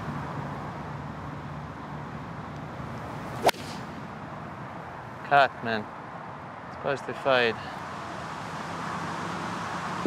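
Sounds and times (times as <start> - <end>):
golf ball impact crack: 2.5 - 4.2
golf club swish: 3.2 - 4.0.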